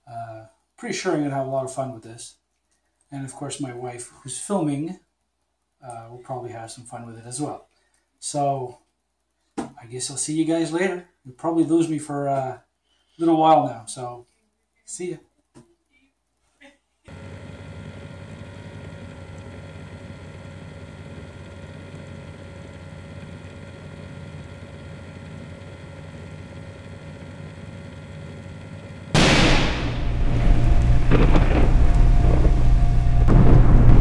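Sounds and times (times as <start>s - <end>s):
drone of held tones: 29.2s - 34.0s
thunder-like crash with whoosh: 29.2s - 34.0s.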